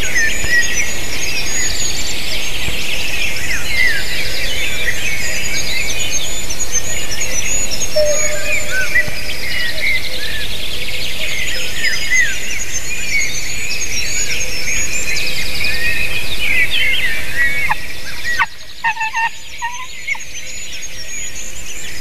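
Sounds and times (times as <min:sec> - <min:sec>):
songbirds trilling and chirping: 0:04.8 - 0:10.0, 0:16.6 - 0:22.0
lower-pitched bird calls: 0:07.7 - 0:10.1, 0:17.6 - 0:20.3.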